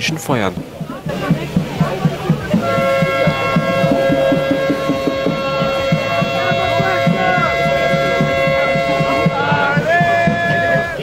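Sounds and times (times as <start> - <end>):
drum beaten fast: 0.0 - 11.0
long horn blast: 2.5 - 11.0.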